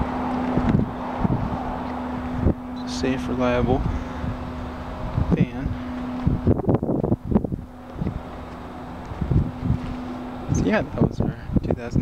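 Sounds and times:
steady low hum: 0.0 - 12.0
wind buffeting microphone: 0.0 - 12.0.

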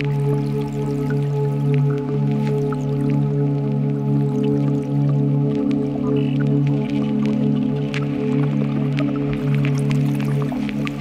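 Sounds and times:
sustained low synth drone: 0.0 - 11.0.

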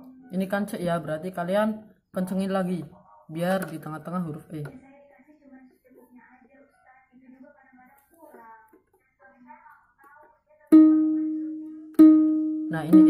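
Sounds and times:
plucked string ringing: 10.7 - 13.0.

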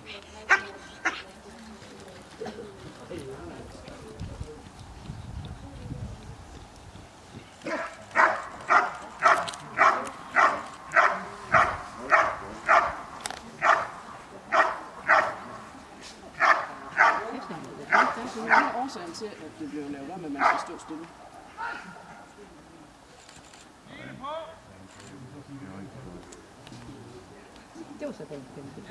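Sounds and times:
dog barking: 7.7 - 13.0, 13.6 - 15.5, 16.4 - 18.8, 20.4 - 20.8.

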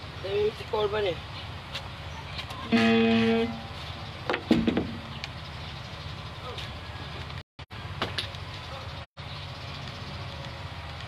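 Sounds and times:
short held tone: 2.7 - 3.8.

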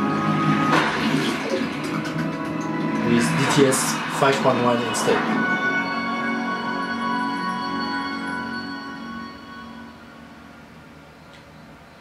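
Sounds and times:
sustained music with held tone: 0.0 - 11.7.

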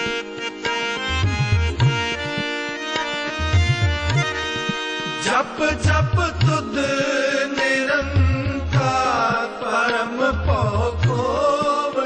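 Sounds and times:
harmonium drone: 0.0 - 12.0
tabla drum beat: 0.0 - 12.0
devotional hymn singing: 5.2 - 12.0.

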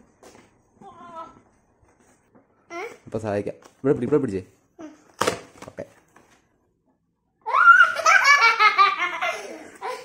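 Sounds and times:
young child laughing: 7.5 - 10.0.

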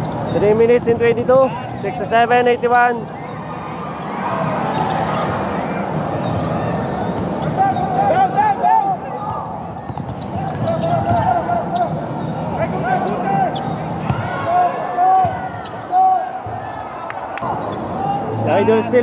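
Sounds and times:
sneakers squeaking on court: 0.0 - 8.4, 9.2 - 19.0
steady background noise: 0.0 - 19.0
basketball bouncing: 9.2 - 11.3.

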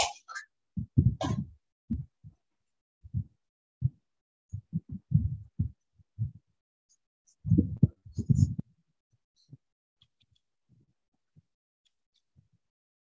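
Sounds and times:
muffled low-pitched bursts: 0.8 - 2.1, 3.0 - 3.9, 4.5 - 6.4, 7.4 - 8.6.

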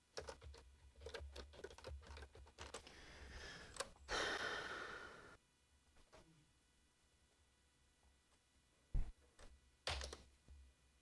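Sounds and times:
computer keyboard typing: 0.1 - 2.9, 9.8 - 10.2.

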